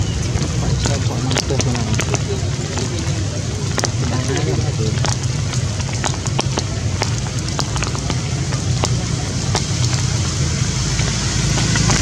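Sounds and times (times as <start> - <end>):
rain falling: 0.0 - 12.0
sharp ticks of raindrops: 0.0 - 12.0.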